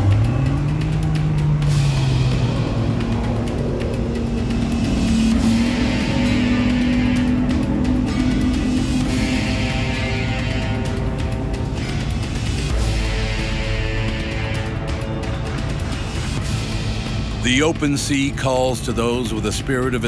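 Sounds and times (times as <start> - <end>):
engine drone rising in pitch: 0.0 - 17.4
engine revving: 0.0 - 18.4
dramatic soundtrack music: 0.0 - 20.0.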